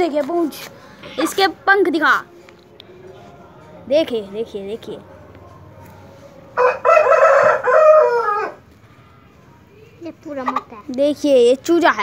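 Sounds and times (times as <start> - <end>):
rooster crowing: 6.6 - 8.6.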